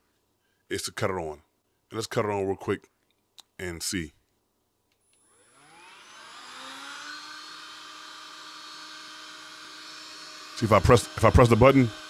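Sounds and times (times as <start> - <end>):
spot cleaner motor whining: 5.3 - 12.0.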